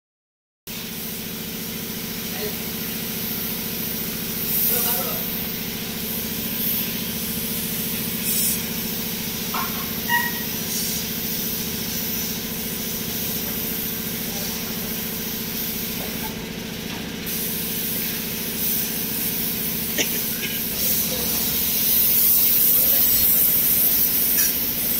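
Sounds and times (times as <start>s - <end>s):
paint spray gun hissing: 0.7s - 24.9s.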